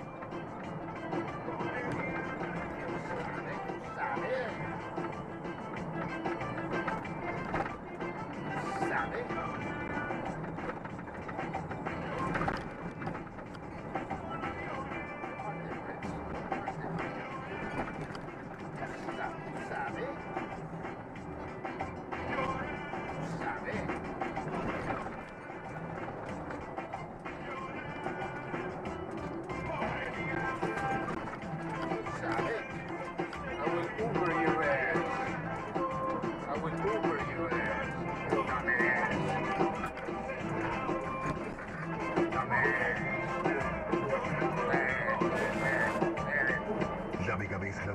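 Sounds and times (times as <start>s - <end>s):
music with singing from car radio: 0.0s - 47.9s.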